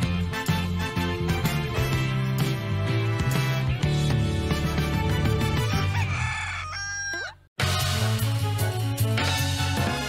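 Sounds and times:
music with drums: 0.0s - 6.0s, 7.6s - 10.0s
music: 0.0s - 6.5s, 7.6s - 10.0s
rooster crowing: 5.7s - 7.5s.

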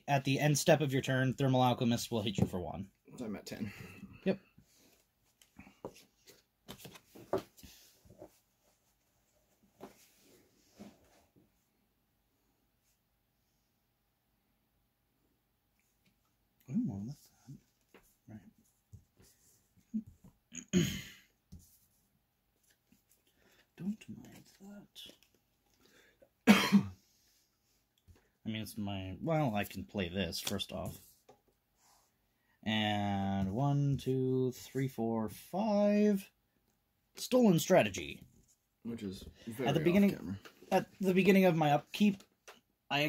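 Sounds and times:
person coughing: 20.5s - 21.3s, 26.4s - 27.0s.

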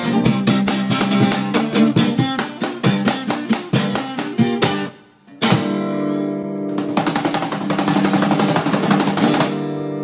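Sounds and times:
acoustic guitar tremolo strumming: 0.0s - 10.0s.

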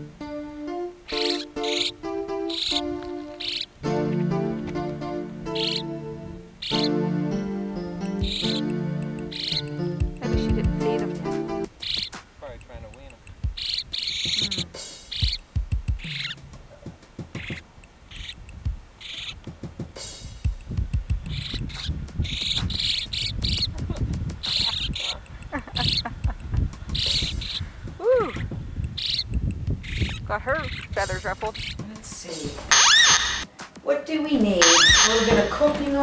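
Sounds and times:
blackbirds calling: 0.0s - 33.6s, 34.4s - 36.0s.

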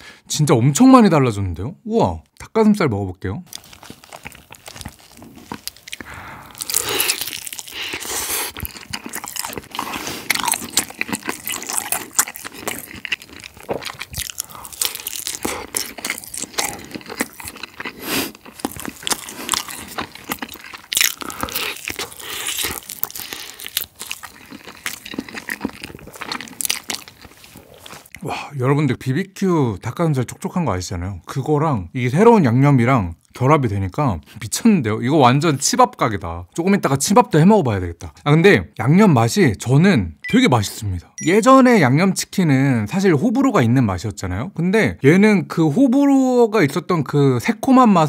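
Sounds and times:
crunchy fried chicken chewing: 3.5s - 28.2s.

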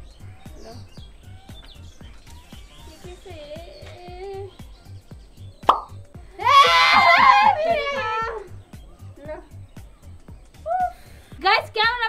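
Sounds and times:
music with low beat: 0.0s - 12.0s.

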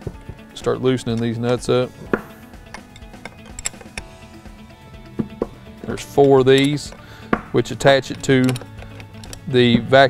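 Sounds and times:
background music: 0.0s - 10.0s
wrench metal clicks: 0.6s - 4.1s, 5.3s - 9.8s.

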